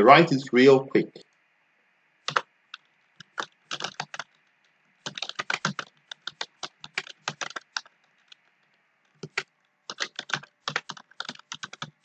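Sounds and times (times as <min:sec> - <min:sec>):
typing on computer keyboard: 0:02.3 - 0:12.0.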